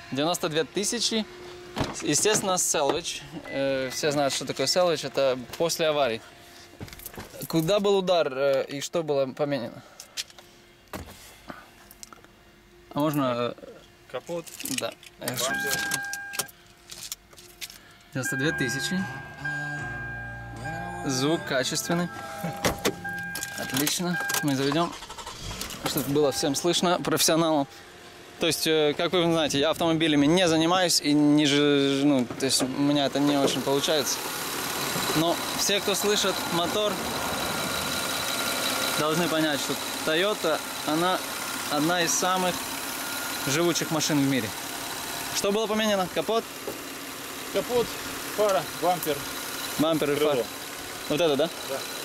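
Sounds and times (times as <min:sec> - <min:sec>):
dashboard chime beep: 0:15.5 - 0:16.4, 0:18.2 - 0:24.6, 0:26.2 - 0:27.7
car engine idling: 0:18.3 - 0:52.0.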